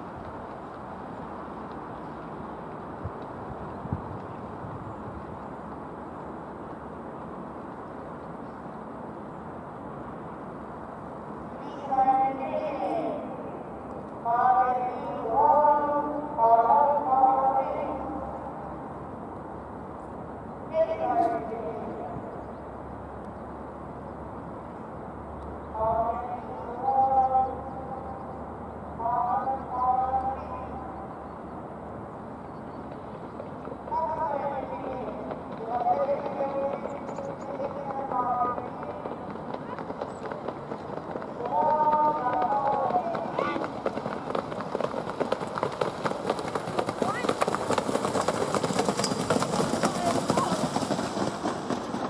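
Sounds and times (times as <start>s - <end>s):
clatter of hooves and wheels: 0.0s - 52.0s
steady outdoor noise: 0.0s - 52.0s.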